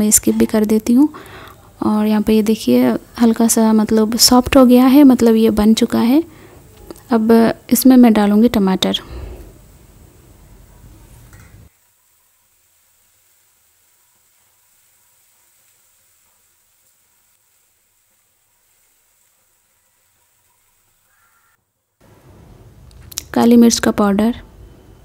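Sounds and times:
faint hiss: 0.0s - 25.0s.

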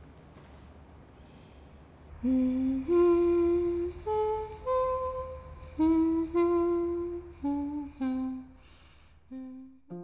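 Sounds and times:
person humming: 2.2s - 10.0s.

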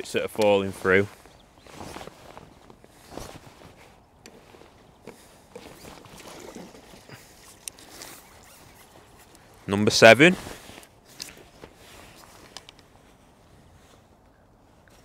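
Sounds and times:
fishing tackle rustling and knocking: 0.0s - 14.3s.

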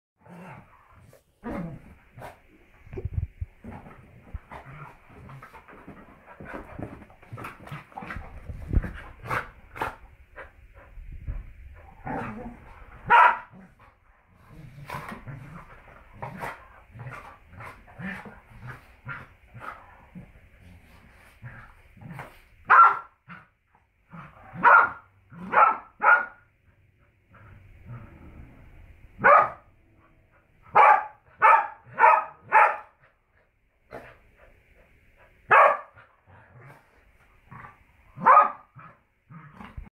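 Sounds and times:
dogs barking: 13.1s - 13.5s, 30.7s - 32.9s, 35.5s - 35.9s.

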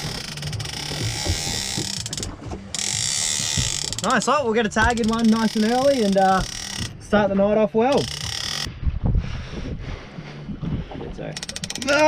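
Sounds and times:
fishing reel clicking rapidly: 0.0s - 7.0s, 7.9s - 8.7s, 11.4s - 12.0s
boat and water noise: 0.0s - 12.0s
rushing wind and water: 0.0s - 12.0s.

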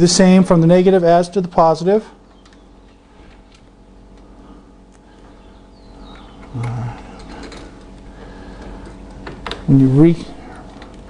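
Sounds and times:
low background hum: 0.0s - 11.0s
man grunting: 6.5s - 7.2s.

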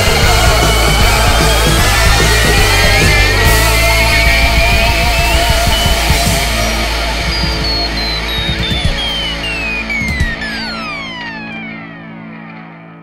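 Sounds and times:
rock band recording: 0.0s - 13.0s
high tone sliding down: 4.4s - 12.3s.

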